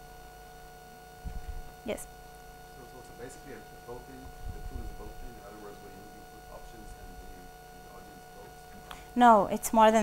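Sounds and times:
steady electrical hum: 0.0s - 10.0s.

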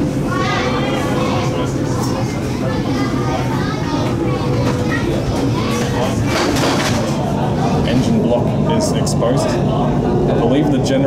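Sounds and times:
passengers' voices: 0.0s - 11.0s
train low rumble: 0.0s - 11.0s.

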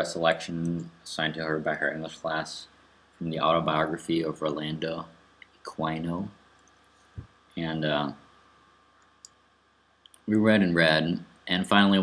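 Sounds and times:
man saying uh: 0.0s - 2.6s, 3.2s - 5.1s, 5.7s - 6.3s, 7.6s - 8.2s, 10.3s - 12.0s.

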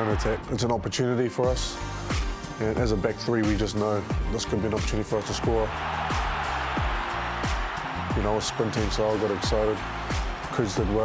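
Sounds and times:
background music with bass drum: 1.4s - 11.0s.

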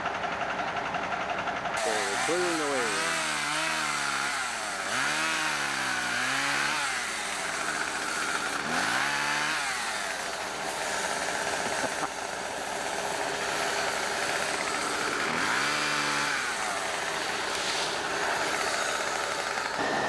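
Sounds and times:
chainsaw revving: 1.8s - 20.0s.

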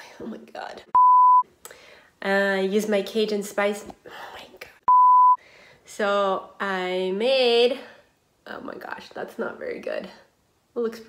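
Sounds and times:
censor bleep: 1.0s - 1.4s, 4.9s - 5.4s.

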